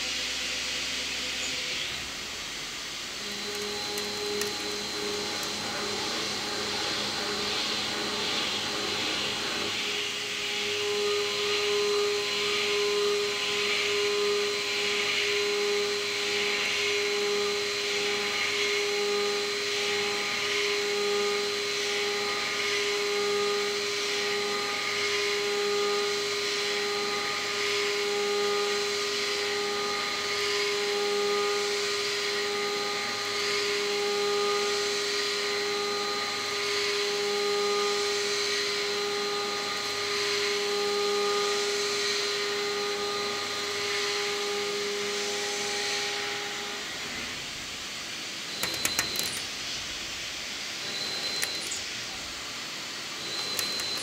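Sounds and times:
milling cutter whine: 0:00.0 - 0:54.0.

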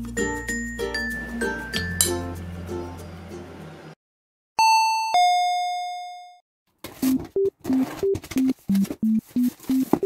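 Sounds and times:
light background music: 0:00.0 - 0:03.9
doorbell chime ding-dong: 0:04.6 - 0:06.4.

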